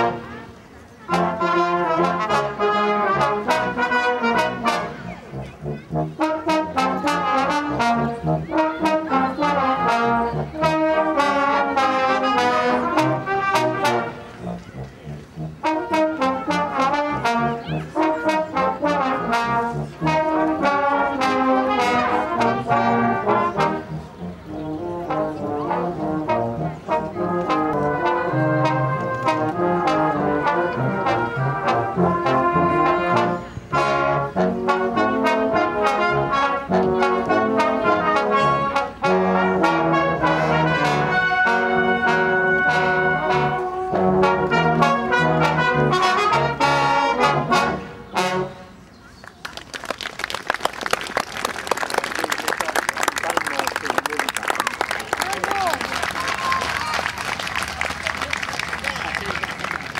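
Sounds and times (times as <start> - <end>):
brass band playing: 0.0 - 48.8.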